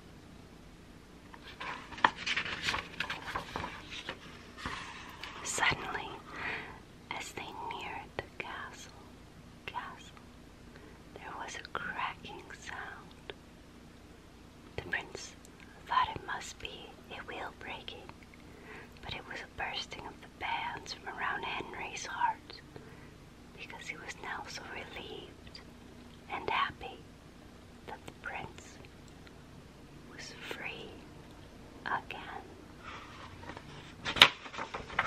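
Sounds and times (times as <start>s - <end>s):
woman whispering: 5.4s - 6.3s, 7.1s - 9.0s, 9.6s - 10.2s, 11.1s - 13.4s, 14.8s - 18.2s, 19.0s - 22.6s, 23.6s - 25.6s, 26.2s - 27.0s, 27.9s - 28.8s, 30.1s - 31.0s, 31.8s - 32.6s.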